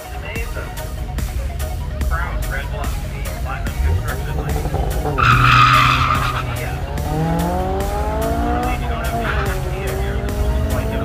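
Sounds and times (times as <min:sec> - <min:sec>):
car engine revving through gears: 0:00.0 - 0:11.0
tire squeal: 0:03.0 - 0:11.0.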